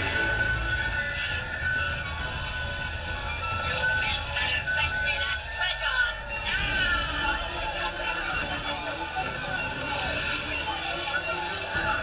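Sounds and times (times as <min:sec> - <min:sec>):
tinny music with singing voices: 0:00.0 - 0:12.0.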